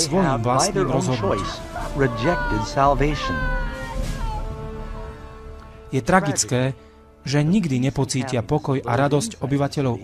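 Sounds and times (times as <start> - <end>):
background music: 0.0 - 10.0
woman wailing: 0.7 - 4.6.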